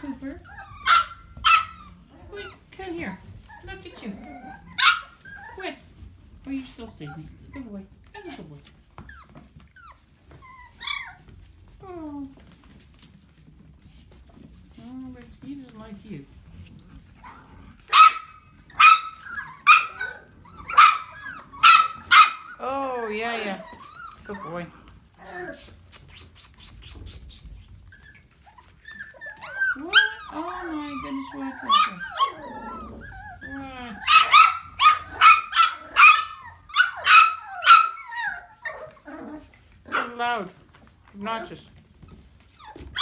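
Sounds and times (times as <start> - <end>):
puppy barking: 0.8 - 2.0, 4.6 - 5.2, 17.3 - 22.6, 33.9 - 38.9, 39.9 - 40.2.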